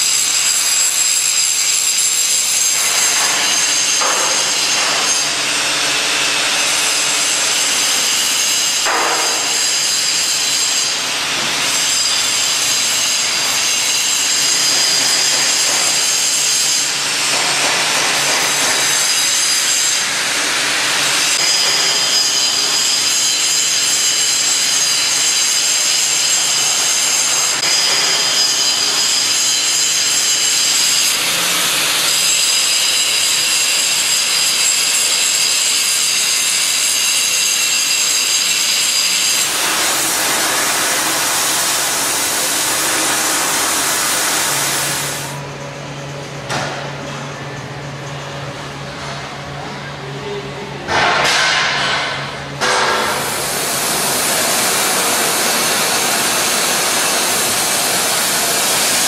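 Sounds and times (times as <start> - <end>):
power grinder cutting steel: 0.0 - 45.4, 52.6 - 59.0.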